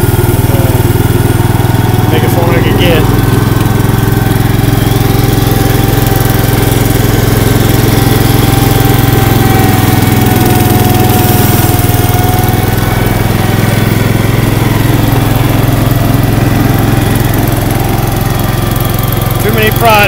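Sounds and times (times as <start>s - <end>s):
garden tractor engine running: 0.0s - 20.0s.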